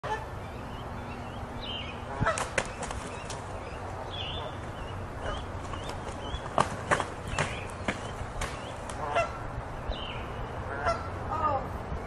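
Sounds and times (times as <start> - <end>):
birds calling: 0.0 - 11.7.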